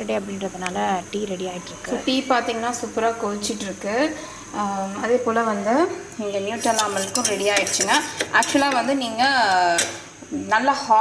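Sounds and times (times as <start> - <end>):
woman talking: 0.0 - 11.0
spoon clinking in a mug: 6.6 - 8.9
spoon stirring tea: 6.6 - 9.1.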